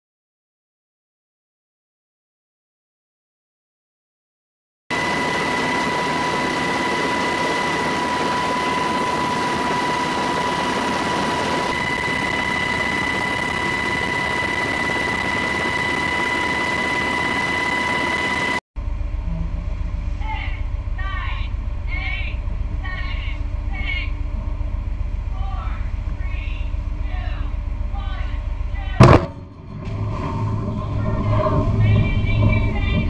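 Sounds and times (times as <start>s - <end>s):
aircraft engine drone: 4.9s - 33.0s.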